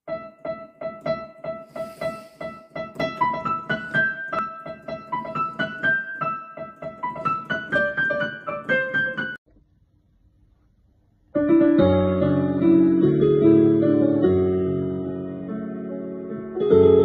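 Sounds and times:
digital piano playing: 0.0s - 9.4s, 11.4s - 17.0s.

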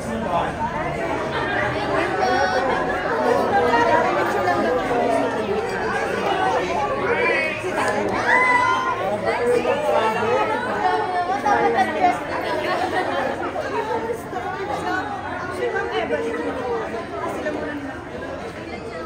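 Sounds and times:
crowd chattering in echoing room: 0.0s - 19.0s.

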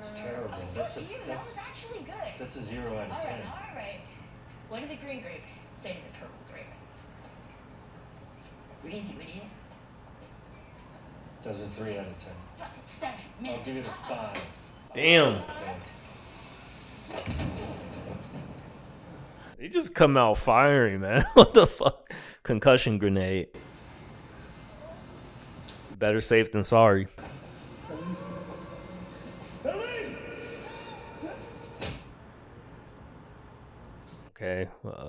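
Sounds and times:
thin high ringing tone: 15.6s - 17.3s, 23.6s - 26.0s, 27.2s - 31.8s.

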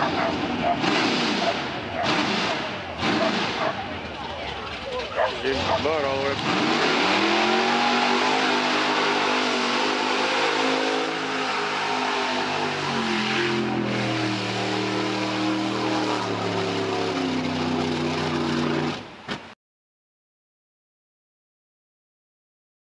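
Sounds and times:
truck engine at high revs: 0.0s - 19.3s.

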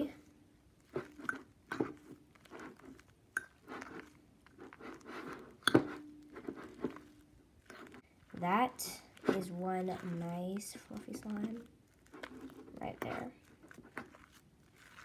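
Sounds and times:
squishy slime stirring: 0.0s - 15.0s.

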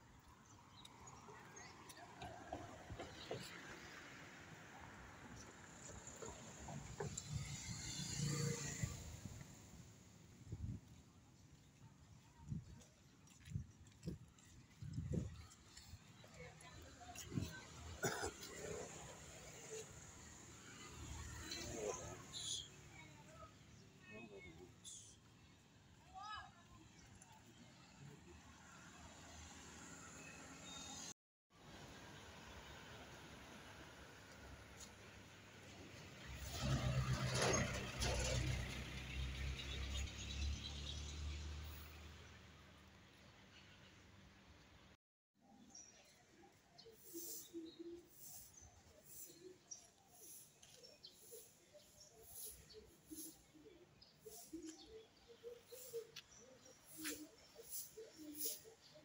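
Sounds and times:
faint street background: 0.0s - 59.0s
footsteps on pavement: 10.8s - 17.3s
vehicle engine rumbling: 31.7s - 42.3s.

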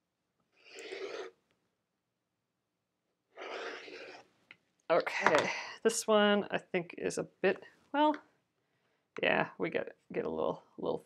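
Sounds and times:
rotary cutter cutting fabric: 0.6s - 1.4s, 3.4s - 4.3s.

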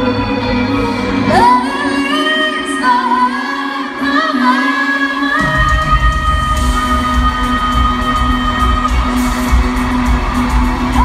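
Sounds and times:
sustained backing music: 0.0s - 11.0s
woman singing pop live: 0.0s - 11.0s.

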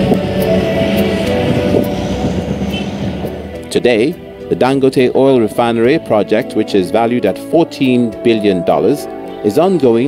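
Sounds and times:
heavy machinery engine drone: 0.0s - 5.1s
background music with held tones: 0.0s - 10.0s.

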